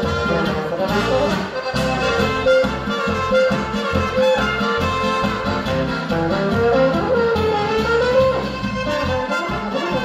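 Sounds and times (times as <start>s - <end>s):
accordion: 0.0s - 10.0s
baritone horn melody: 0.0s - 10.0s
clarinet: 0.0s - 10.0s
guitar: 0.0s - 10.0s
oom-pah bass beat: 0.0s - 10.0s
trumpet: 0.0s - 10.0s.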